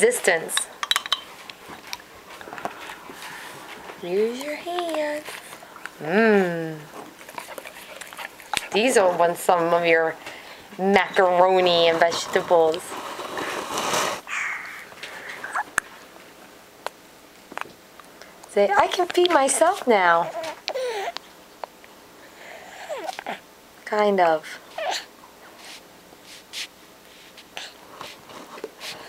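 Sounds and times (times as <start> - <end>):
baby snuffling breaths: 22.4 - 23.4, 27.6 - 28.2.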